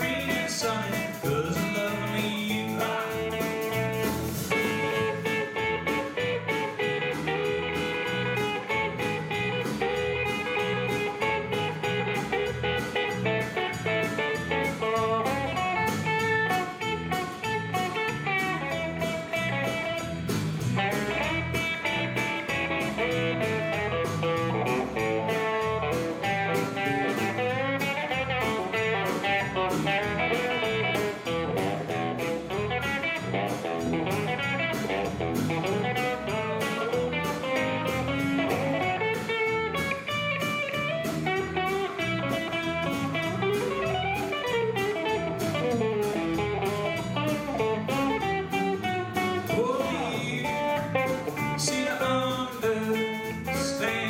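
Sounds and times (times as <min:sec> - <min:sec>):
bass guitar: 0:00.0 - 0:54.0
drums keeping a beat: 0:00.0 - 0:54.0
electric guitar lead: 0:00.0 - 0:54.0
strummed acoustic guitar: 0:00.0 - 0:54.0.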